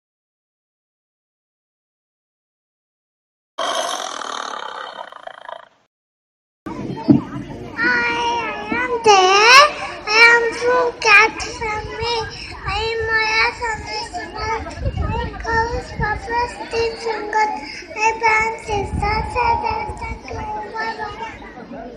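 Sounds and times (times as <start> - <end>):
child reciting in sing-song voice: 7.8 - 21.4.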